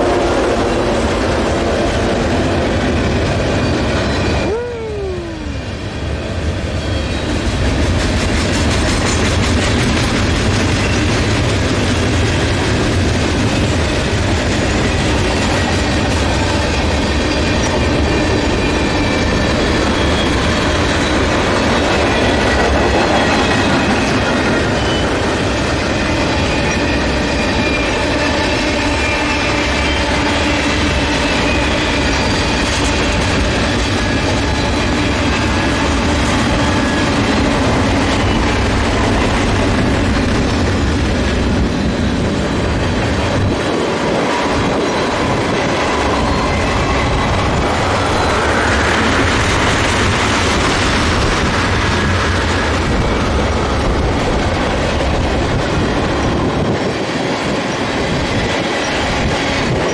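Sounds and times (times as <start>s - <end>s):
freight train rolling past: 0.0s - 59.9s
wheels squealing on rails: 0.0s - 59.9s.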